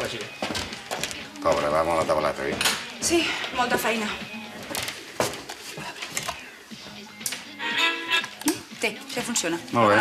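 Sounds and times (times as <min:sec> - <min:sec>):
electronic melody of tones: 0:07.6 - 0:08.3.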